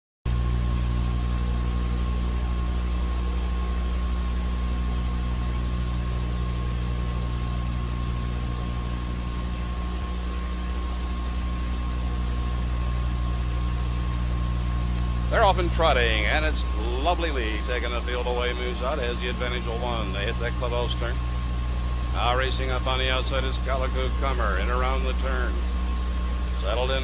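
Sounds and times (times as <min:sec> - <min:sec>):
electrical hum with whine and hiss: 0:00.3 - 0:27.0.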